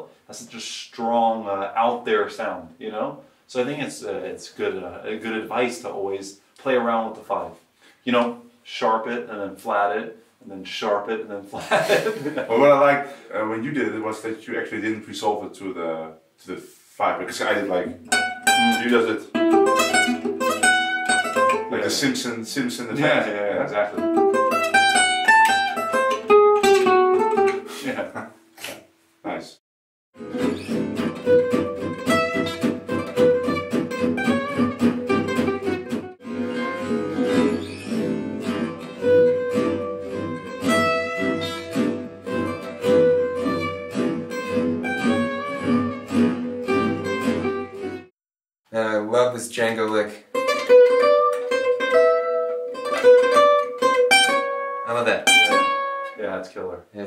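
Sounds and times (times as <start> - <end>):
slowed acoustic jazz guitars: 18.0 - 22.1, 22.8 - 28.8, 30.2 - 48.1, 50.4 - 56.2.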